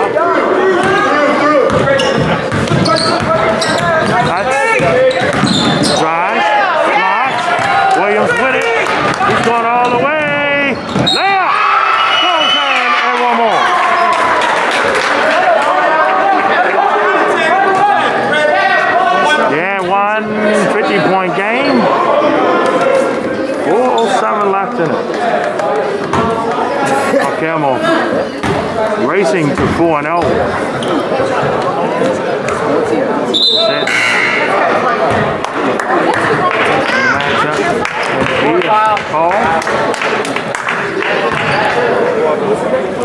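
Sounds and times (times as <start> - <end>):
basketball bouncing on hardwood floor: 1.7 - 5.9
people shouting: 11.0 - 14.4.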